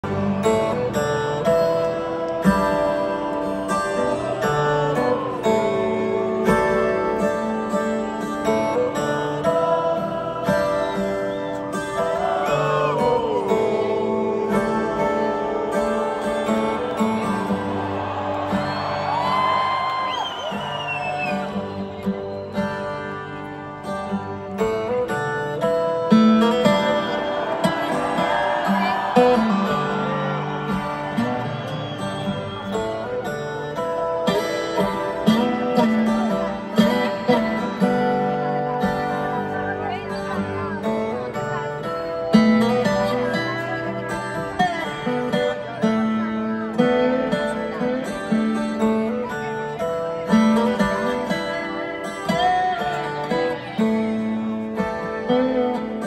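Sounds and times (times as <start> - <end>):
strummed acoustic guitar: 0.0 - 56.0.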